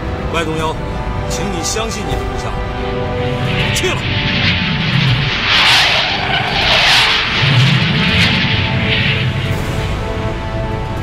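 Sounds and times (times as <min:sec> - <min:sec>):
background music with sustained tones: 0:00.0 - 0:11.0
fighter jet engine rushing: 0:02.2 - 0:11.0.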